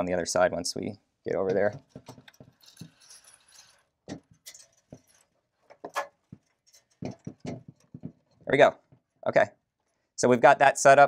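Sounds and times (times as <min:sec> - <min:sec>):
wiring rustling: 0:01.4 - 0:09.2.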